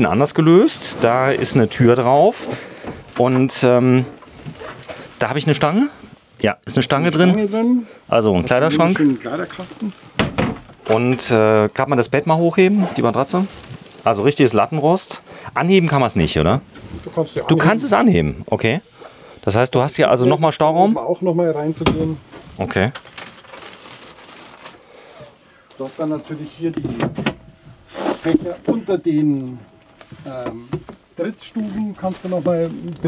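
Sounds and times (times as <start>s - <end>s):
bedding rustling: 0.0s - 5.9s, 12.3s - 15.0s, 25.8s - 33.0s
cabinet door knocking shut: 10.2s - 10.6s.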